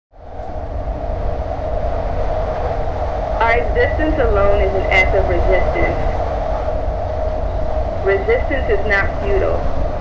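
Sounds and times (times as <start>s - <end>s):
mid-pitched hum: 0.2s - 10.0s.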